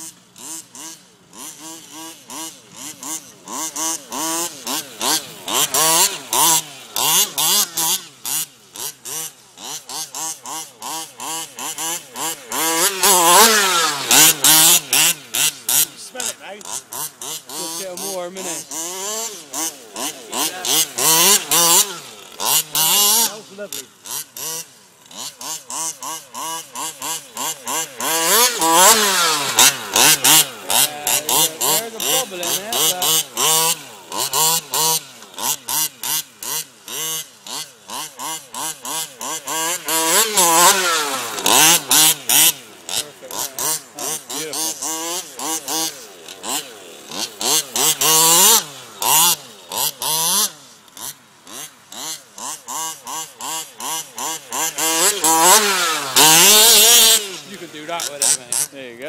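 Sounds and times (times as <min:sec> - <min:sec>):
two-stroke engine revving: 0:00.0 - 0:59.0.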